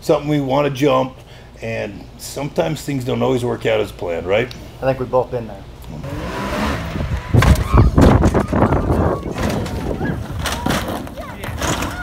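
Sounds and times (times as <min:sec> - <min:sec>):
off-road vehicle engine revving: 0:05.8 - 0:08.4
rough wind noise: 0:06.0 - 0:12.0.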